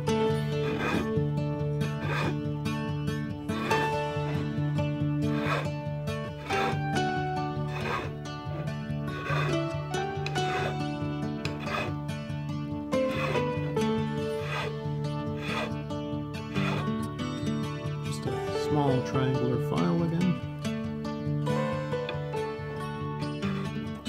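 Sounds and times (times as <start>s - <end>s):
file rasping on wood: 0.0s - 20.8s, 21.4s - 24.0s
background music: 0.0s - 24.0s.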